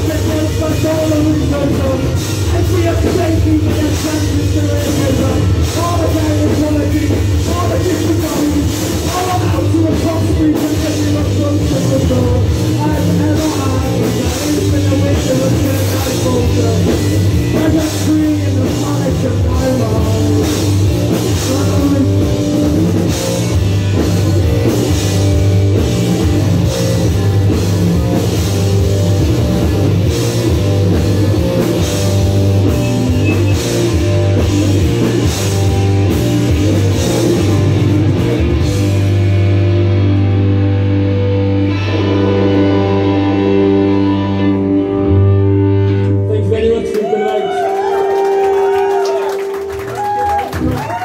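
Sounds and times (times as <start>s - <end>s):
bass guitar: 0.0s - 51.0s
drums: 0.0s - 51.0s
electric guitars: 0.0s - 51.0s.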